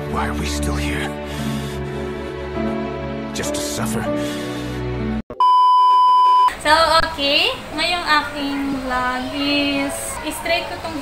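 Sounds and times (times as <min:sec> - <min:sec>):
background music: 0:00.0 - 0:05.2
high-pitched beep tone: 0:05.3 - 0:06.5.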